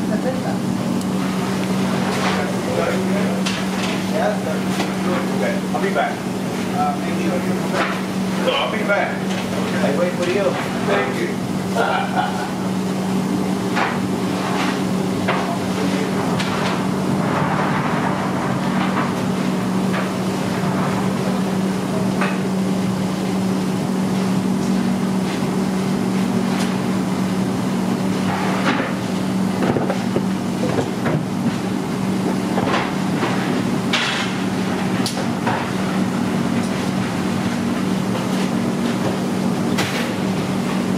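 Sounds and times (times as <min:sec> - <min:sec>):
low machine hum: 0:00.0 - 0:40.9
sharp knocks and clatter: 0:32.6 - 0:34.4.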